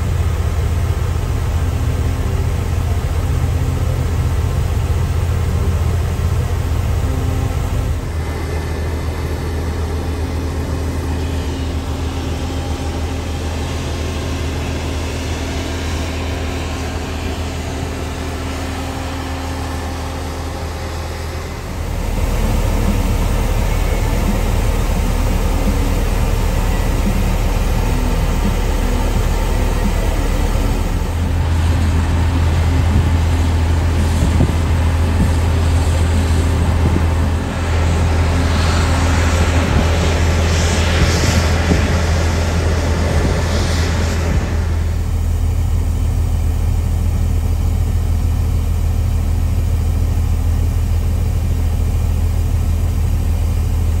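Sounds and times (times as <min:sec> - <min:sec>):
combine harvester running: 0:00.0 - 0:54.0
tractor engine droning: 0:00.0 - 0:54.0.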